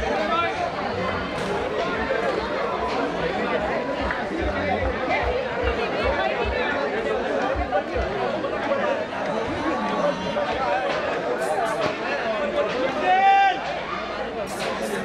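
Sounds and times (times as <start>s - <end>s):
people chattering: 0.0s - 15.0s.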